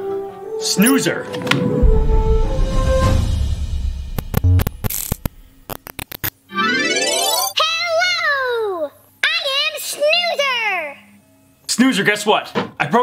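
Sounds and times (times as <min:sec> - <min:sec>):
falling warbling electronic tones: 0:06.5 - 0:07.6
rising electronic sweep: 0:06.5 - 0:07.6.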